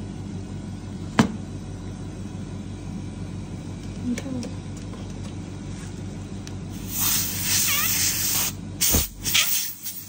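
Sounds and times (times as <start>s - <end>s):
steady low hum: 0.0s - 10.0s
air hissing: 6.7s - 10.0s.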